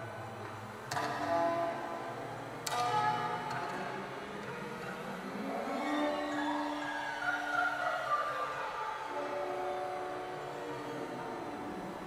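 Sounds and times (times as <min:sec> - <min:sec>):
orchestra sustained chords: 0:01.2 - 0:12.0.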